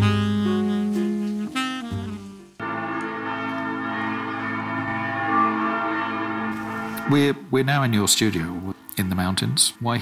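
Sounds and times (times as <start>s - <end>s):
saxophone phrase: 0.0s - 7.5s
church bells ringing: 2.6s - 7.4s.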